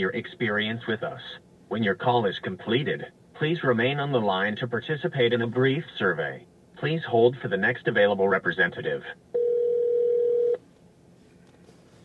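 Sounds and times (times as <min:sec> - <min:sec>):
steady telephone tone: 0:09.3 - 0:10.6.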